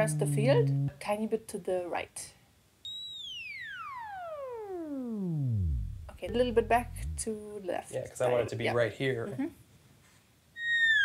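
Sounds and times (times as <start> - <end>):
theremin downward glide: 0.0 - 1.0, 2.9 - 7.3.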